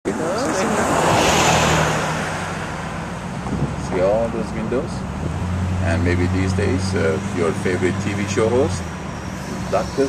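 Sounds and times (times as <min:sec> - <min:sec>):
car passing: 0:00.1 - 0:10.0.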